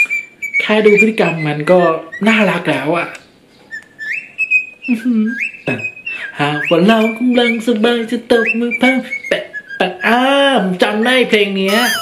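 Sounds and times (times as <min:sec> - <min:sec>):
cockatiel whistling a tune: 0:00.0 - 0:02.4, 0:03.7 - 0:07.7, 0:08.3 - 0:10.1, 0:11.7 - 0:12.0.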